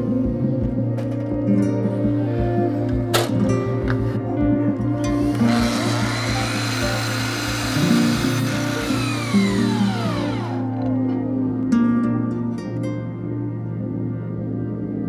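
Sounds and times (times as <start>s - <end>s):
background music: 0.0s - 15.0s
electric miter saw cutting: 5.3s - 10.8s.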